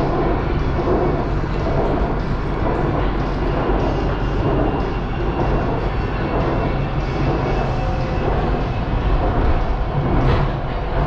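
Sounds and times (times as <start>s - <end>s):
train rumbling along track: 0.0s - 11.0s.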